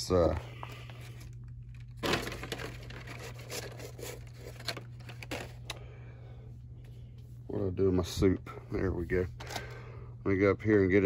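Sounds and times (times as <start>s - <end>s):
steady low hum: 0.0s - 11.0s
blister packs crinkling: 0.6s - 5.8s.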